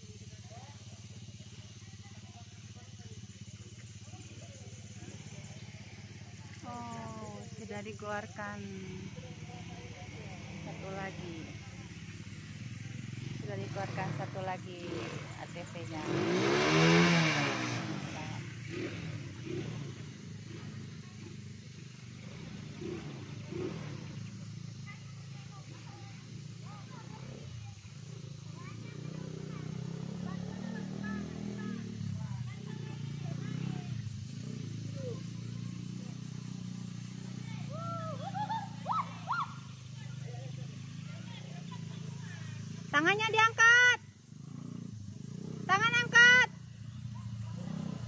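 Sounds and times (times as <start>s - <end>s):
atv engine revving: 0.0s - 48.0s.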